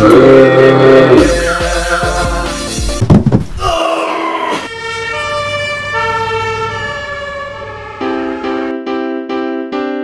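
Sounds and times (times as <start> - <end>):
loud thump: 3.0 - 3.6
ambulance siren: 4.5 - 8.8
keyboard-like notes: 4.7 - 10.0.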